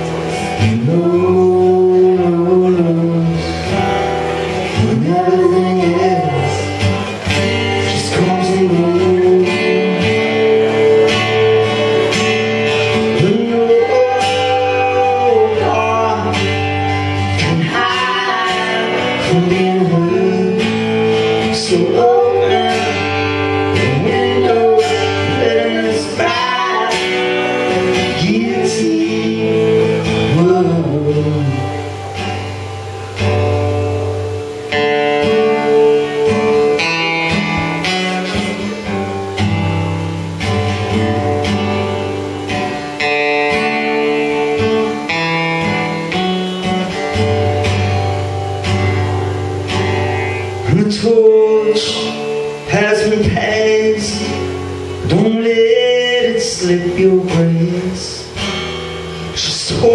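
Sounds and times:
person singing: 0.0s - 32.2s, 50.5s - 58.4s, 59.2s - 59.9s
acoustic guitar strumming: 0.0s - 59.9s.

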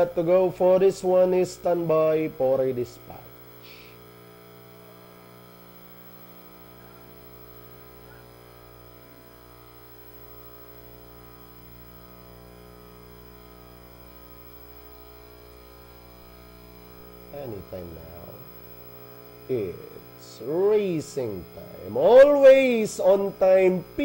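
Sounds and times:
electrical mains hum: 0.0s - 24.0s
faint audio line buzz: 0.0s - 24.0s.

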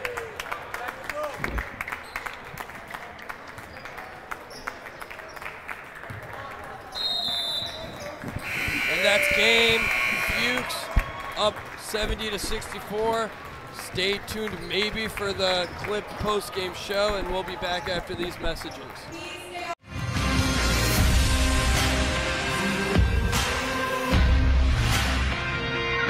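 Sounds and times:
short high whistle: 8.4s - 10.7s
loud buzzer: 8.4s - 10.9s.

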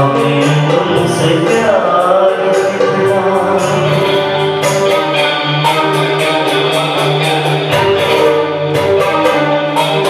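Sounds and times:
electric guitar: 0.0s - 10.0s
harmonium and keyboard chords: 0.0s - 10.0s.

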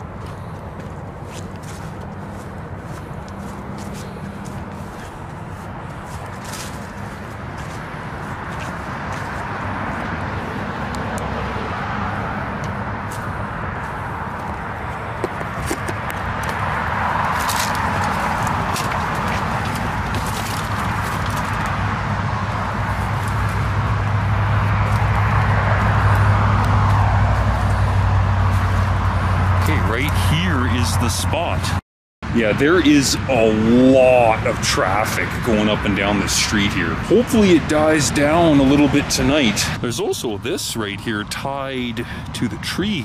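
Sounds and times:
footsteps on dirt and twigs: 0.0s - 11.2s, 12.0s - 30.5s
low engine rumble: 0.0s - 43.0s
passing cars: 0.0s - 43.0s.

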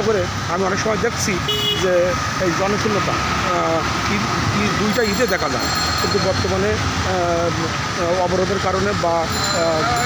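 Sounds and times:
people talking: 0.0s - 10.0s
street traffic: 0.0s - 10.0s
high-pitched tone: 9.3s - 10.0s.

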